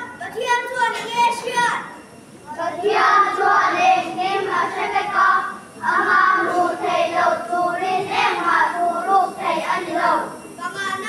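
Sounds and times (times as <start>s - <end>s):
children singing: 2.6s - 10.4s.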